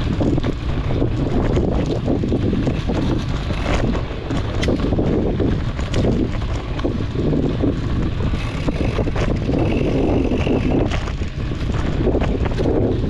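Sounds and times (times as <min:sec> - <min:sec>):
bike clicks and rattles: 0:00.0 - 0:13.0
tyres rumbling over dirt trail: 0:00.0 - 0:13.0
wind buffeting microphone: 0:00.0 - 0:13.0.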